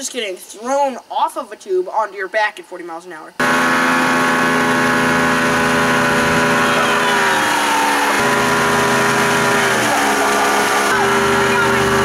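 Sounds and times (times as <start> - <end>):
boat engine running: 3.4 - 12.0.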